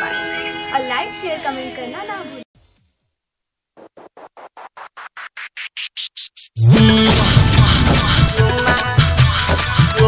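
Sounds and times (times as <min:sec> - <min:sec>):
fast roll of scratchy noise: 0:03.7 - 0:06.6.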